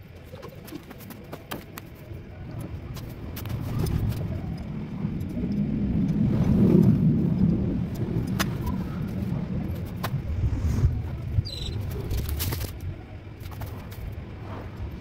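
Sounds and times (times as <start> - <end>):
vehicle passing by: 4.8 - 12.2.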